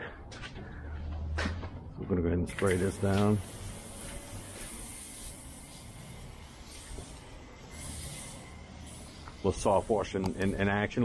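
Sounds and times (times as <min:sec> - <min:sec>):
spray wand hissing: 0:02.6 - 0:11.0.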